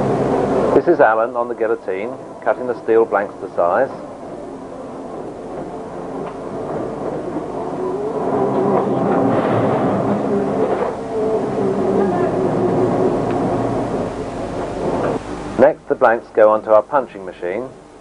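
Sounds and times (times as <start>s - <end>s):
guillotine shear humming: 0.0s - 16.4s.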